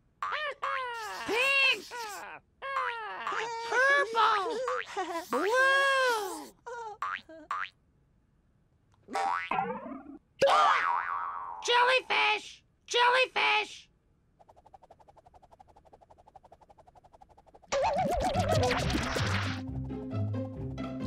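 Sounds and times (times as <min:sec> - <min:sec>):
cartoon voices chattering: 0:00.6 - 0:05.7.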